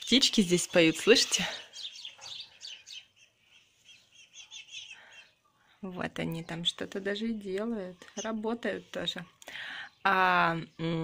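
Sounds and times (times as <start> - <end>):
songbirds chirping: 0.0 - 11.0.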